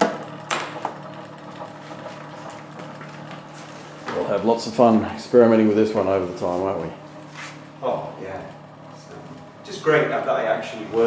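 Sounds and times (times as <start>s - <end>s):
mechanical hum of spinning wheel: 0.0s - 11.0s.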